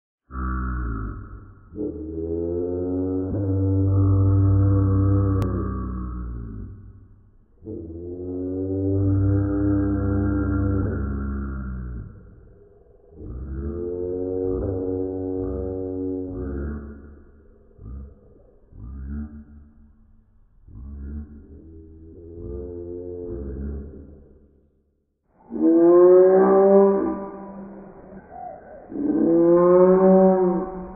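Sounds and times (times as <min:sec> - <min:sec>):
dinosaur call from duck sounds: 0:25.4 - 0:30.9.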